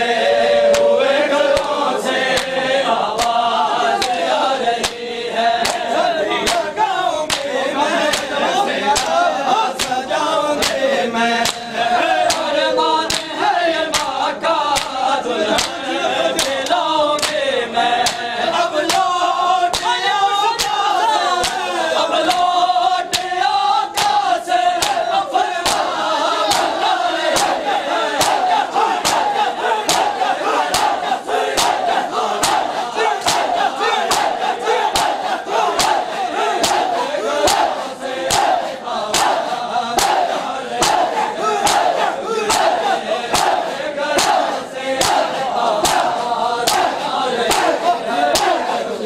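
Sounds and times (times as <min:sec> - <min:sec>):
crowd chanting: 0:00.0 - 0:49.0
people slapping their chests: 0:00.2 - 0:49.0.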